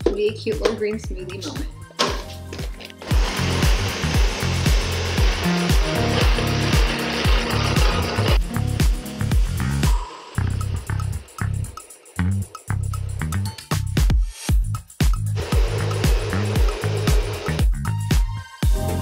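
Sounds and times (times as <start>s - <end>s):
background music with steady beat: 0.0s - 19.0s
blender motor running: 3.0s - 8.4s, 15.4s - 17.7s.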